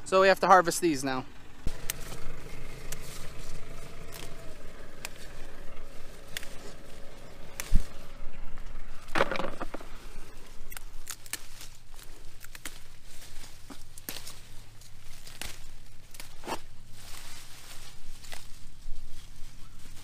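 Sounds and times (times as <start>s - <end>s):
leaves rustling: 0.0s - 20.0s
pepper stems snapping: 1.7s - 2.2s, 2.8s - 4.4s, 5.0s - 5.4s, 6.2s - 8.1s, 10.5s - 13.0s, 13.7s - 14.4s, 15.1s - 16.7s.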